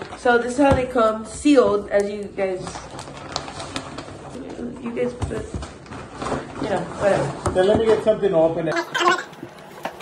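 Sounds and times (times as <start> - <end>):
soft rustling of packaging: 1.3 - 8.5.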